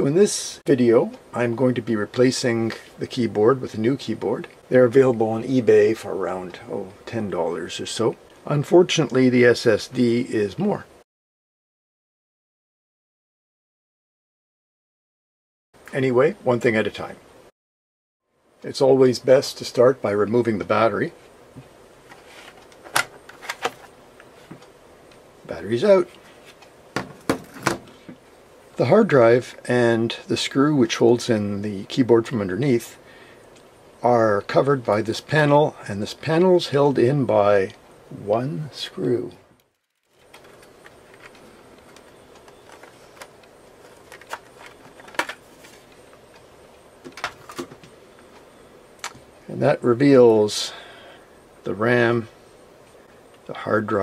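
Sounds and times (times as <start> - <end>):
low steady hiss: 0.0 - 11.0, 15.8 - 17.5, 18.2 - 54.0.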